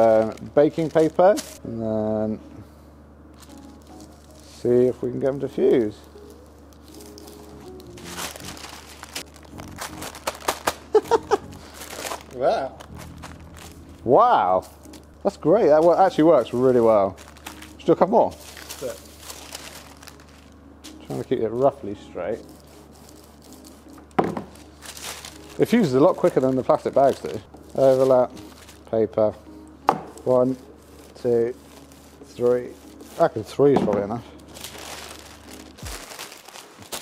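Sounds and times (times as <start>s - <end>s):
paper and foil packets crinkling: 0.0s - 1.6s, 3.4s - 29.3s, 30.2s - 37.0s
soft background music: 0.0s - 37.0s
iron knocking on table: 24.2s - 24.5s.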